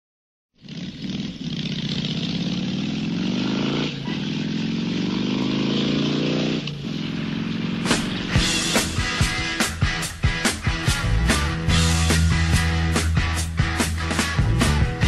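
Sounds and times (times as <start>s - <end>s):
motorcycle engine accelerating: 0.6s - 15.0s.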